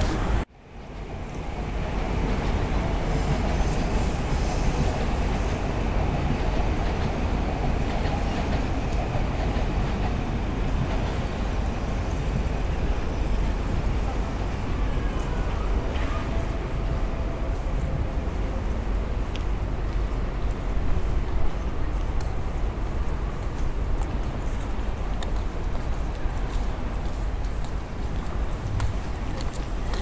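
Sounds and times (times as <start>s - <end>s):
city ambience: 0.0s - 30.0s
train rumbling on tracks: 0.0s - 30.0s.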